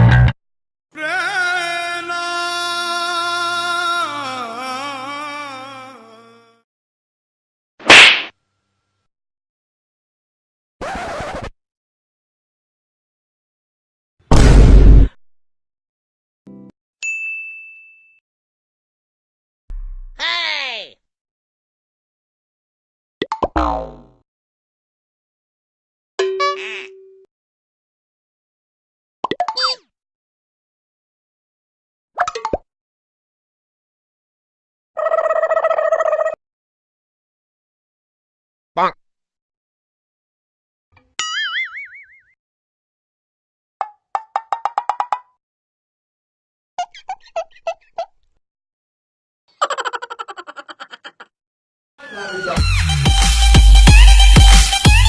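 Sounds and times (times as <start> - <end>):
bell ding: 17.0 - 18.2
cartoon spring boing: 23.3 - 24.2.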